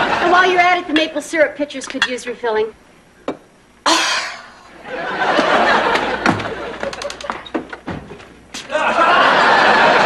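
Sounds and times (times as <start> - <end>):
audience laughter: 4.7 - 7.5, 8.6 - 10.0
footsteps: 5.9 - 8.8.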